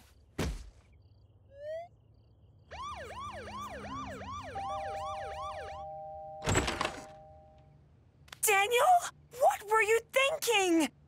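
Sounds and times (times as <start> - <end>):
cartoon police siren wailing: 1.5 - 1.9, 2.7 - 6.1.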